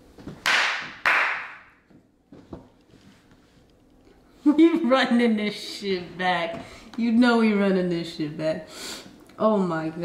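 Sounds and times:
sharp hand slaps: 0.4s - 1.8s.

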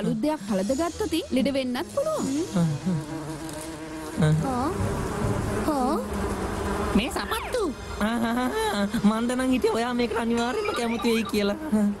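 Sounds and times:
buzzing hum: 0.0s - 12.0s.

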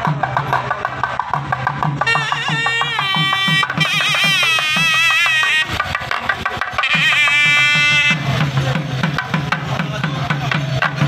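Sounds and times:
barrel drum beaten quickly: 0.0s - 11.0s
wind instrument ornamented melody: 2.0s - 9.1s.

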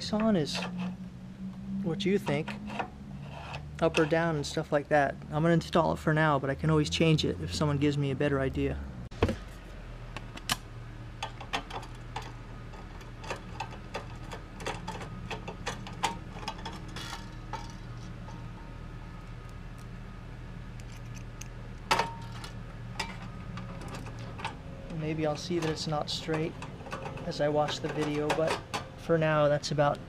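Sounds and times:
steady low hum: 0.0s - 30.0s
metal plate and screws clinking: 11.2s - 19.3s.

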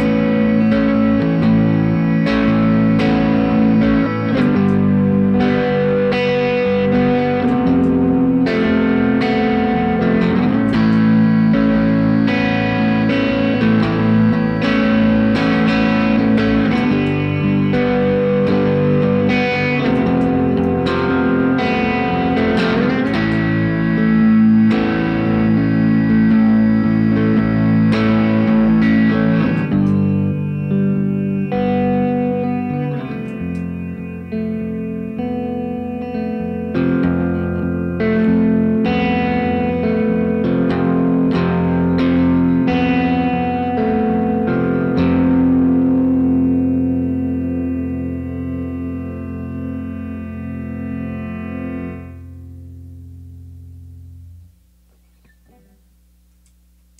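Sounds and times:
electric guitar strumming chords: 0.0s - 56.9s.

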